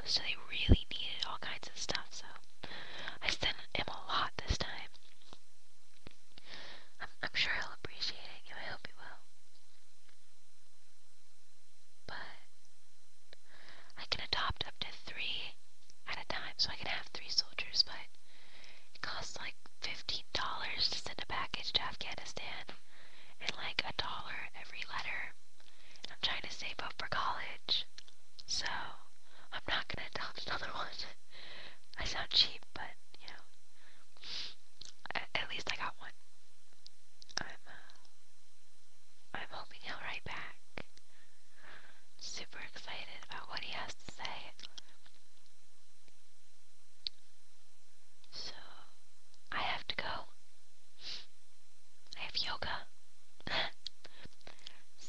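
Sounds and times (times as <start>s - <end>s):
person whispering: 0.0s - 2.4s, 3.0s - 5.0s, 7.0s - 9.2s, 12.1s - 12.5s, 13.9s - 18.1s, 19.0s - 22.8s, 23.4s - 25.4s, 26.0s - 27.9s, 28.5s - 31.2s, 31.9s - 33.5s, 34.3s - 36.1s, 37.3s - 38.0s, 39.3s - 40.9s, 42.2s - 44.8s, 48.3s - 48.9s, 49.5s - 50.3s, 52.1s - 52.9s.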